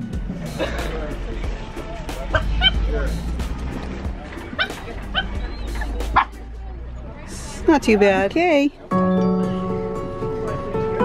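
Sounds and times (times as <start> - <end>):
background music: 0.0 - 11.0
crowd chatter: 0.0 - 11.0
small dogs yipping: 4.4 - 6.4.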